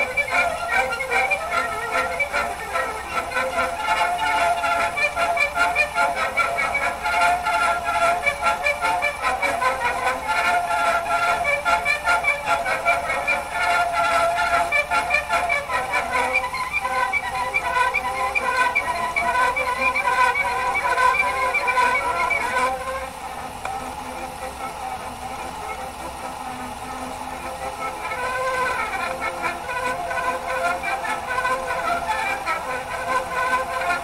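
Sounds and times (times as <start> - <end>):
gramophone record music: 0.0 - 34.0.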